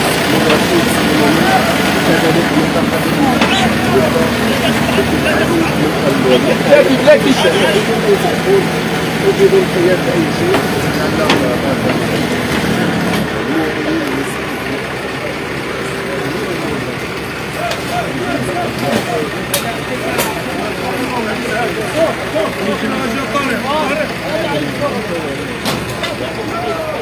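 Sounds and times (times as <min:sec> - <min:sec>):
crowd voices: 0:00.0 - 0:27.0
heavy machine engine running: 0:00.0 - 0:27.0.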